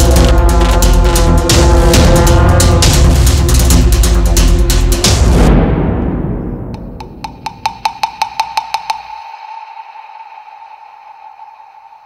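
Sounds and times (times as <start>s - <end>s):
sharp dry percussive knocks: 6.8s - 11.0s.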